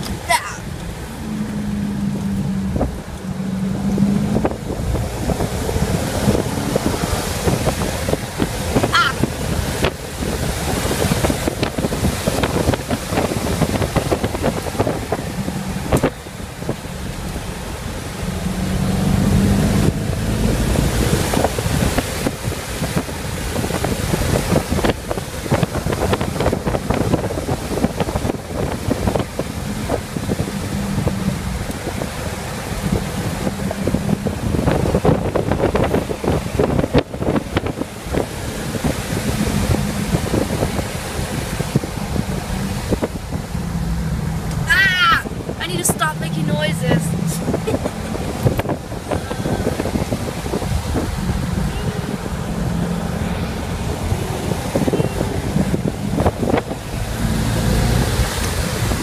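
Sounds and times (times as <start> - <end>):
tyres and engine rumble: 0.0 - 59.0
wind noise on microphone: 0.0 - 59.0.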